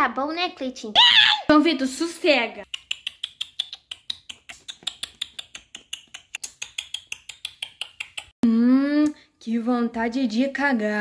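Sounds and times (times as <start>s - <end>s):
mouth chewing and lip-smacking: 2.6s - 8.4s.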